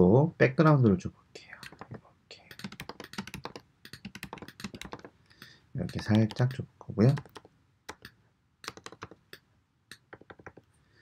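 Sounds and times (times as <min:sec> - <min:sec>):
computer keyboard typing: 0:01.6 - 0:10.7.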